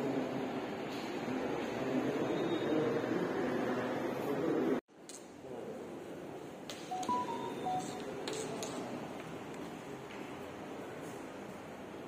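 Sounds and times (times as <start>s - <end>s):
short electronic beeps: 6.9s - 8.1s.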